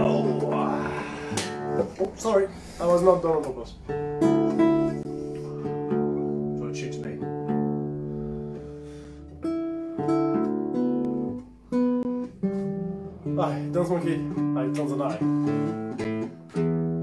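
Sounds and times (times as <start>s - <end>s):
guitar strings plucked: 0.0s - 2.3s, 3.3s - 17.0s.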